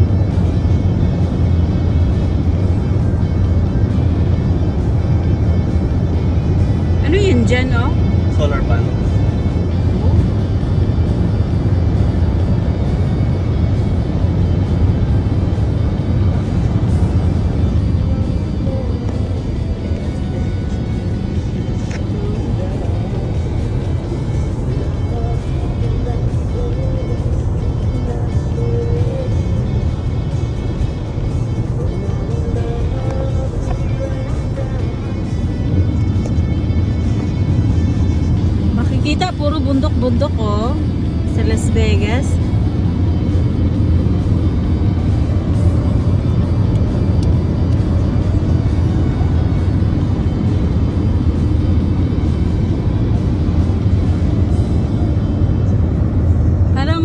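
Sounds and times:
faint music: 0.0 - 57.0
road and engine rumble in car: 0.0 - 57.0.

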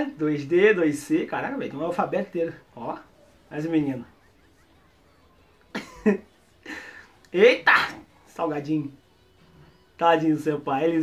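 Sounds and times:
man's stifled laugh: 5.7 - 7.1.

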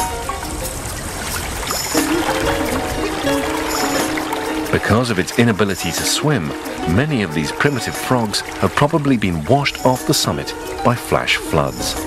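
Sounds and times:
background music: 0.0 - 12.0
water trickling: 0.0 - 12.0.

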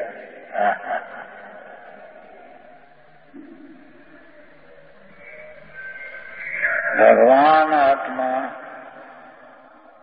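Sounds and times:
man lecturing: 6.6 - 8.6.

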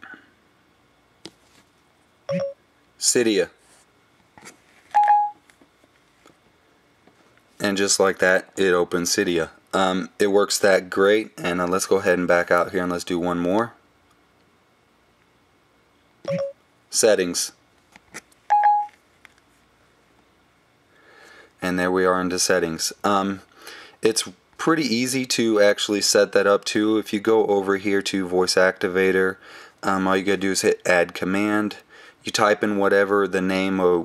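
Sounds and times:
short electronic beep: 2.3 - 2.6, 5.0 - 5.4, 16.3 - 16.6, 18.5 - 18.9.

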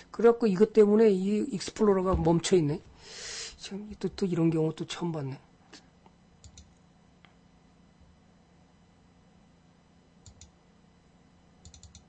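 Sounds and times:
faint computer mouse clicks: 6.4 - 7.4, 10.2 - 10.5, 11.6 - 12.0.

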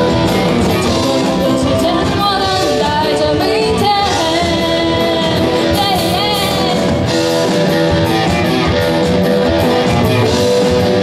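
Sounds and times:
woman singing pop-rock song: 0.0 - 7.6
acoustic guitar: 0.0 - 11.0
band with drums: 0.0 - 11.0.

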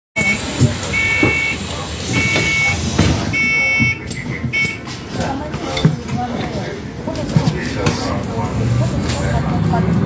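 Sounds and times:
electronic warning beeps: 0.2 - 4.9
bus engine rumble: 0.2 - 10.0.

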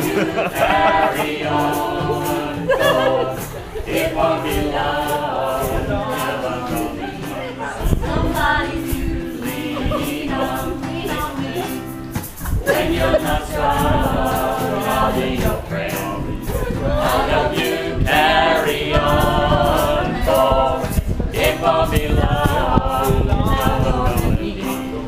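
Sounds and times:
group singing together: 0.0 - 25.0
strummed acoustic guitar: 0.0 - 25.0.

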